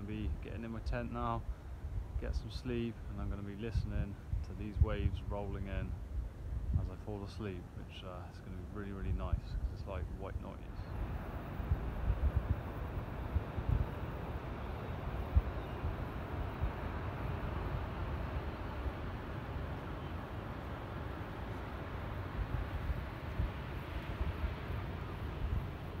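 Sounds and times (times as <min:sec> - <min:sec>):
wind on microphone: 0:00.0 - 0:07.5, 0:08.9 - 0:26.0.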